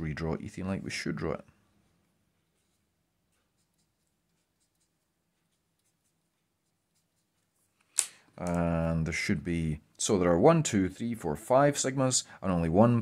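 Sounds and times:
marker scratching on paper: 2.4s - 7.8s.

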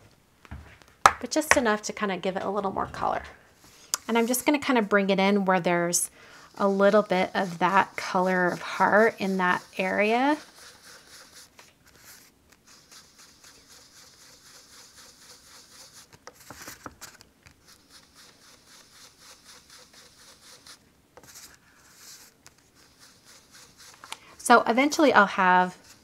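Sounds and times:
brush scrubbing on cardstock: 3.6s - 24.1s, 24.9s - 26.0s.

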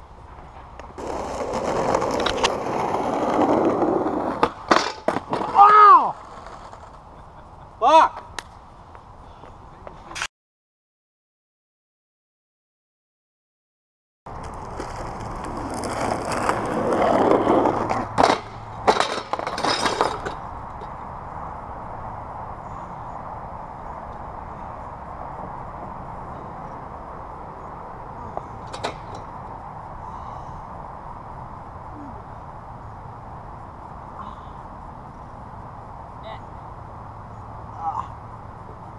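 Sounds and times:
skateboard wheels rolling on asphalt: 0.0s - 10.0s, 14.3s - 38.9s
skateboard clattering on pavement: 0.4s - 7.0s, 14.3s - 20.9s
steady hiss: 16.5s - 38.9s.

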